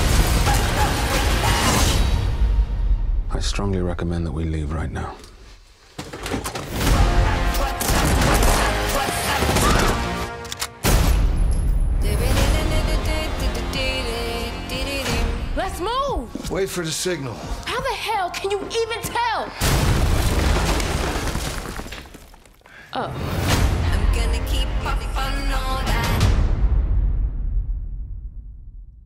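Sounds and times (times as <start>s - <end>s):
dramatic orchestral music: 0.0s - 3.0s, 6.7s - 19.0s.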